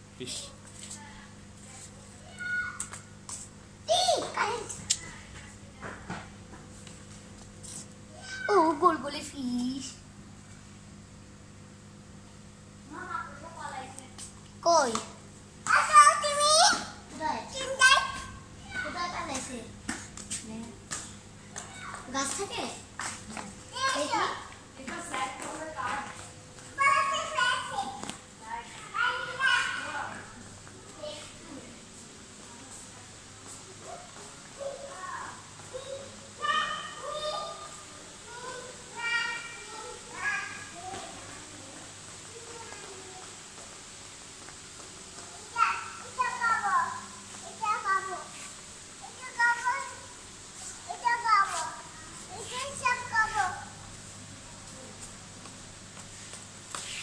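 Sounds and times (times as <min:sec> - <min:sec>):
young child calling out: 0:02.3 - 0:02.9, 0:08.1 - 0:09.0, 0:34.7 - 0:40.6.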